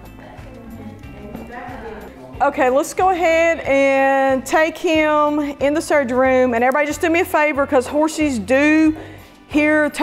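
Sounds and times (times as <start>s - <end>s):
quiet voices: 0.0s - 2.4s
faint background music: 0.0s - 10.0s
horse hooves stepping on floor: 0.9s - 1.9s.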